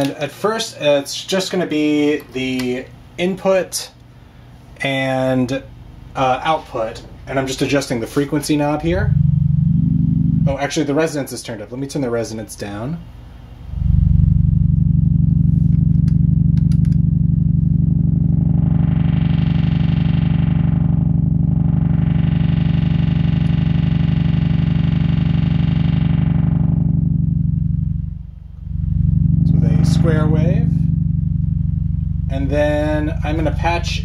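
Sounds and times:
low buzzy synthesizer tone: 5.2s - 11.3s, 13.0s - 34.0s.

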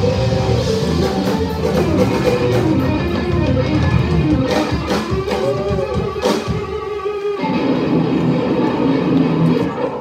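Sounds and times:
electric guitars: 0.0s - 10.0s
live blues band playing: 0.0s - 10.0s.

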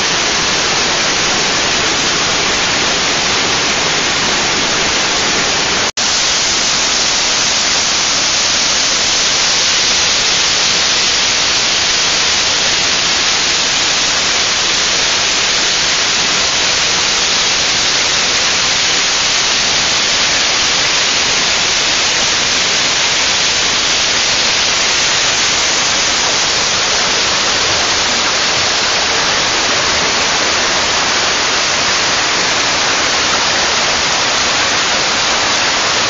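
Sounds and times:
stream rushing over boulders: 0.0s - 36.0s.

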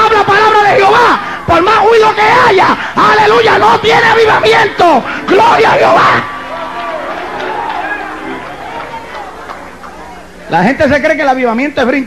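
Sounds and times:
congregation talking and calling out: 0.0s - 10.7s.

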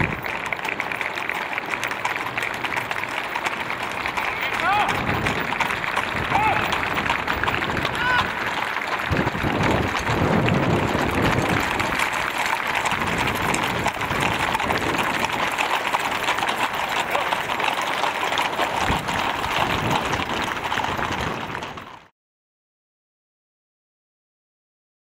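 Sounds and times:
hooves clattering on asphalt: 0.0s - 22.1s.

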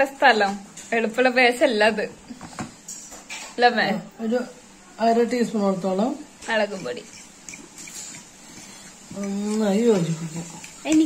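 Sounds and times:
spoon scraping thick paste: 6.4s - 11.0s.

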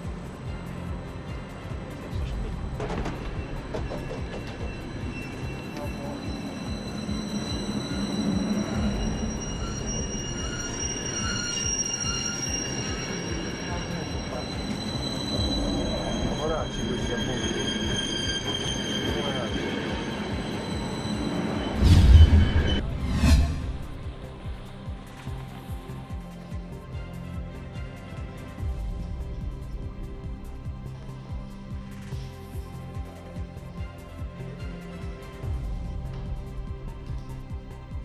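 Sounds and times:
low train rumble: 0.0s - 38.0s
train wheels squealing: 2.1s - 24.0s.

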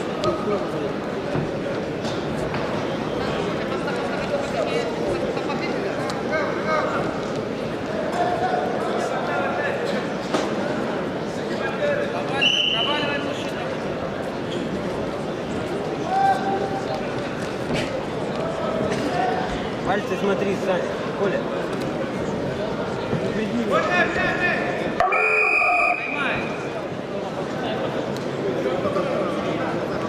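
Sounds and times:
arena crowd: 0.0s - 30.0s
shrill whistle blast: 25.0s - 26.2s.

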